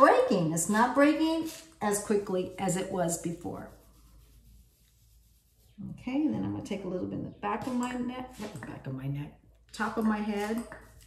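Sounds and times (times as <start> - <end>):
woman speaking: 0.0 - 3.8, 5.8 - 10.8
fingers rubbing through damp hair: 0.7 - 6.5.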